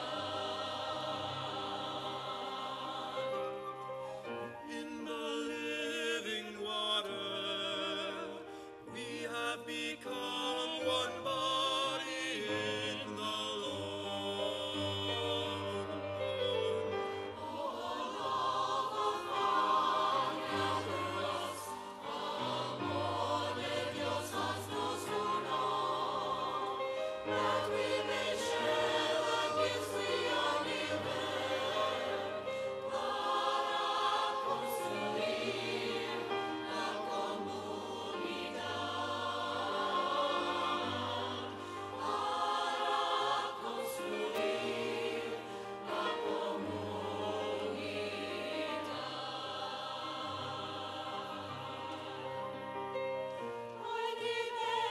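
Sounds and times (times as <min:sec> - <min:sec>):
church choir singing: 0:00.0 - 0:54.9.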